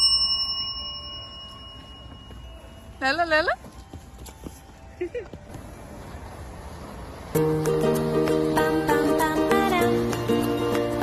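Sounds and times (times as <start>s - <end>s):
bell-like chime ringing: 0.0s - 3.3s.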